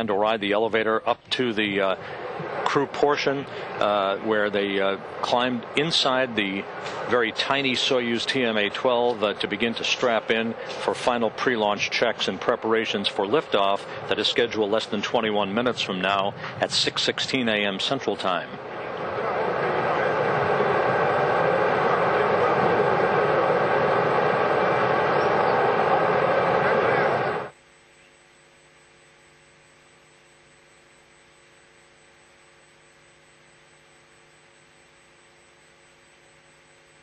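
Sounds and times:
faint electrical hum: 0.0s - 37.0s
loud rushing noise: 1.6s - 15.0s, 18.0s - 27.5s.

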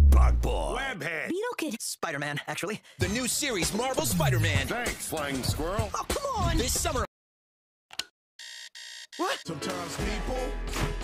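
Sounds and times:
alarm clock beeping: 8.4s - 9.5s.

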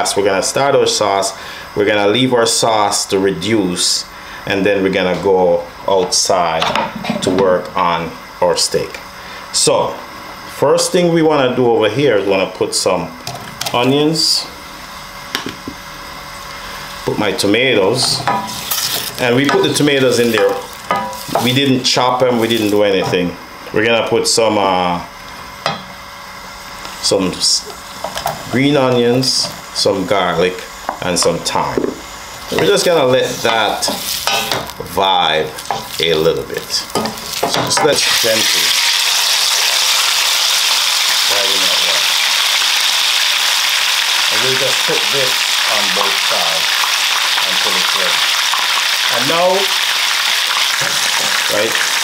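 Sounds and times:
onions sizzling in oil: 18.1s - 23.4s, 29.2s - 52.0s.

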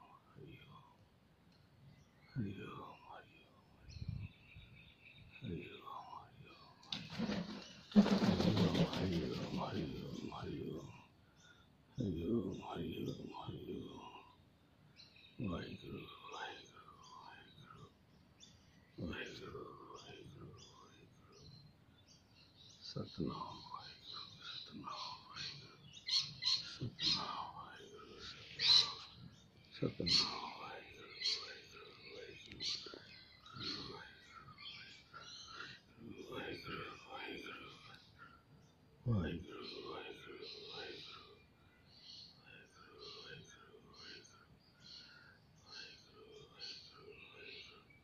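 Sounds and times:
birds chirping and calling: 1.6s - 48.0s.

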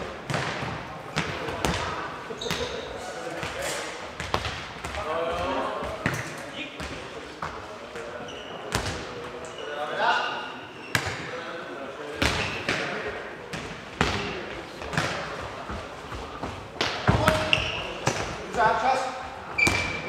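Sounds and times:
players' voices: 0.0s - 20.0s.

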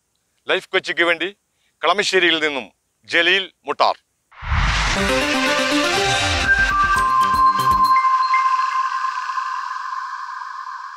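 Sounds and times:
held high synth tone: 4.6s - 10.9s
electronic jingle beat: 4.9s - 8.8s.

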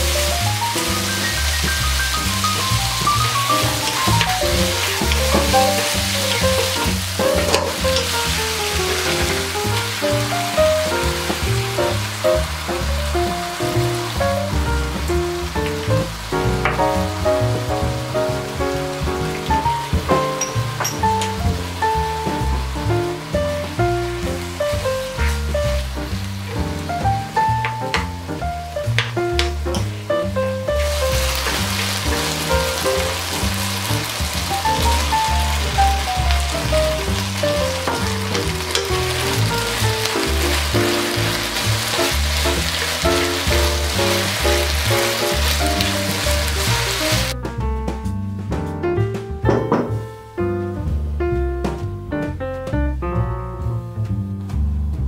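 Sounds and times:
oil sizzling in a frying pan: 0.0s - 47.4s
background music: 0.0s - 55.0s.

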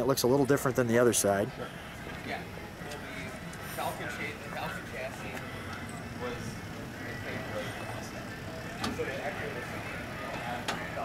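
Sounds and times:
faint background chatter: 0.0s - 11.0s
steady outdoor hum: 0.0s - 11.0s.

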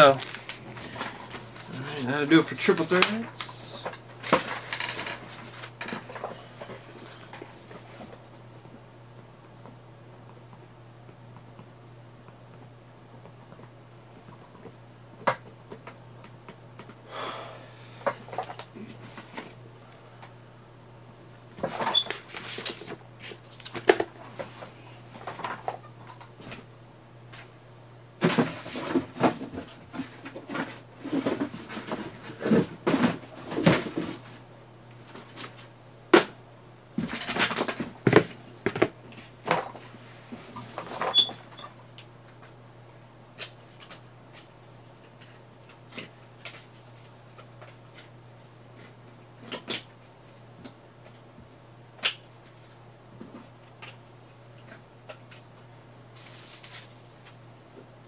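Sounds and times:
papers and cards rustling: 0.0s - 8.2s, 56.1s - 57.4s
steady low hum: 0.0s - 58.0s.

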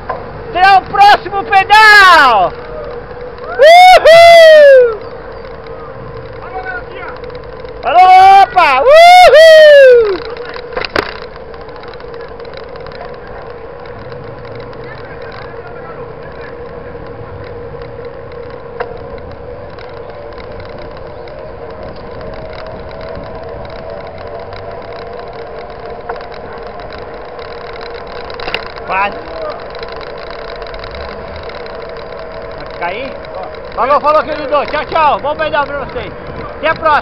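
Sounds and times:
bike tyres rolling on asphalt: 0.0s - 37.0s
sharp clicks: 0.0s - 37.0s.

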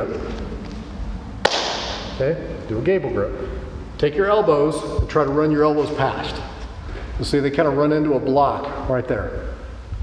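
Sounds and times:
hands slapping together: 1.4s - 2.1s.

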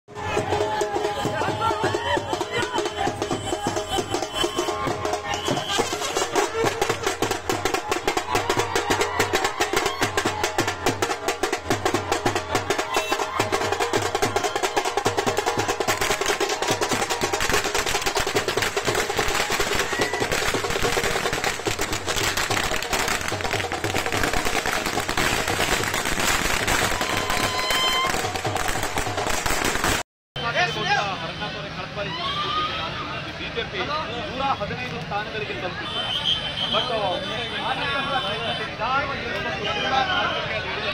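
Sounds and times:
fast dense drumming: 0.1s - 30.0s
festive music: 0.1s - 30.0s
voices: 0.2s - 17.1s, 30.4s - 40.9s.

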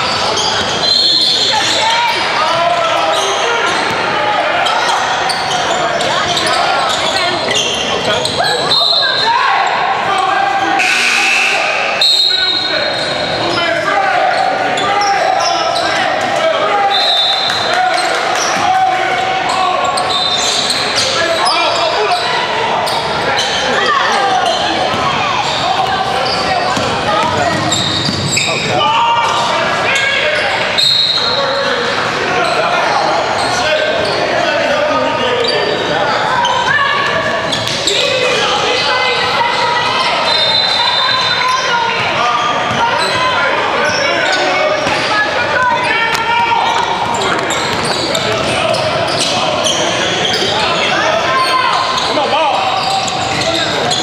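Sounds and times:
people calling out and talking: 0.0s - 54.0s.

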